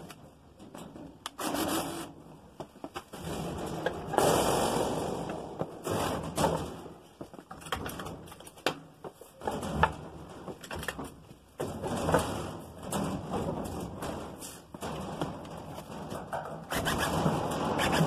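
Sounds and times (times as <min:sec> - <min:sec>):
sharp knocks of metal sheet: 0:02.8 - 0:07.0, 0:11.6 - 0:18.0
metal sheet grating: 0:14.0 - 0:18.0.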